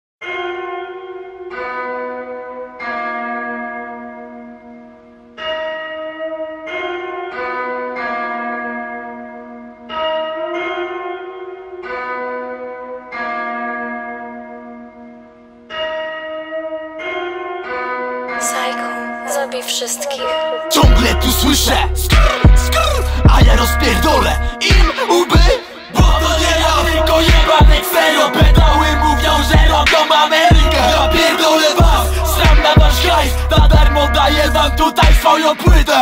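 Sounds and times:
slow bell melody: 0:00.2 - 0:35.0.

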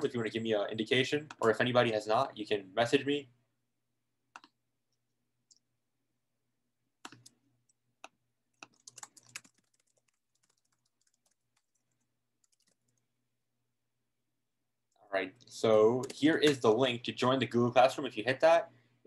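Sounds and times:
faint keyboard typing: 0:04.3 - 0:05.7, 0:07.0 - 0:13.1.

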